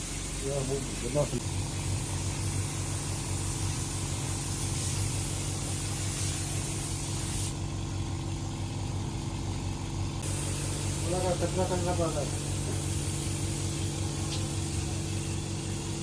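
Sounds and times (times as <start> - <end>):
air compressor hum: 0.0 - 16.0
paint spray gun hissing: 0.0 - 16.0.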